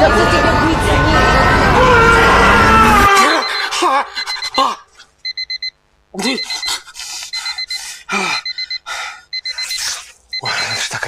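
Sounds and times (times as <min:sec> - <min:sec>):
man's startled cry: 0:02.2 - 0:04.8
electronic alarm clock beeping: 0:03.2 - 0:11.0.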